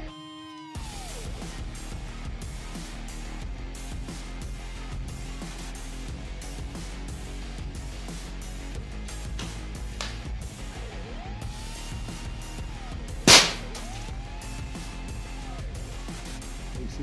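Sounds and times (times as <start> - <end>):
air rifle shot crack: 13.3 - 14.0.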